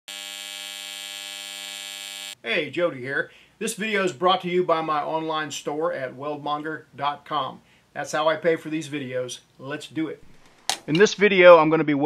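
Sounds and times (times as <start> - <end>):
welding arc buzzing: 0.0 - 2.4.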